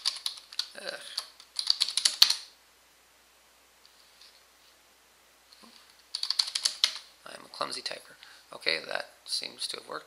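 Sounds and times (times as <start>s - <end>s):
keyboard typing: 0.0s - 2.5s, 6.0s - 7.1s.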